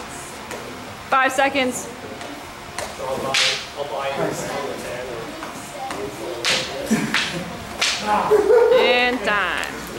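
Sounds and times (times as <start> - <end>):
wooden staffs swishing and striking: 6.4 - 8.1.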